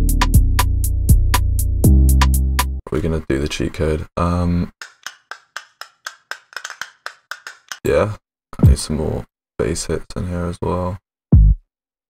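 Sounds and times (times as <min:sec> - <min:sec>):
dry wood-block-like percussion hits: 0:04.8 - 0:07.9.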